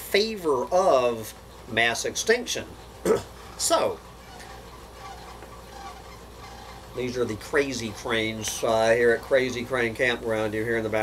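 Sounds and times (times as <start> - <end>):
distant cranes honking: 3.3 - 8.4.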